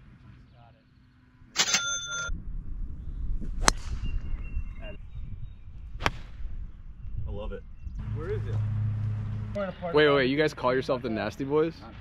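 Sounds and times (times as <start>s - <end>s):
metallic clatter with ringing tones: 1.6s - 2.3s.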